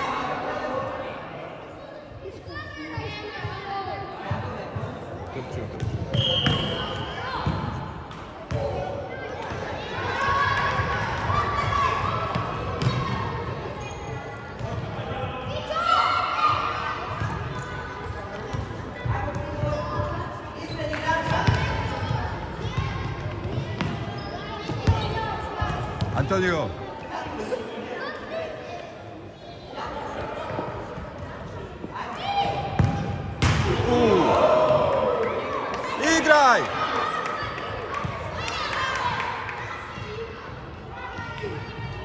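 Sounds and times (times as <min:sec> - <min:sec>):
people shouting: 0:33.7 - 0:35.3.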